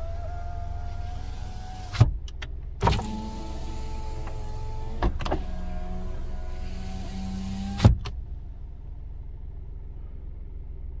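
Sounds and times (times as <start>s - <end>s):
power window motor whine: 0.0s - 2.1s, 2.8s - 8.2s
low hum: 2.2s - 11.0s.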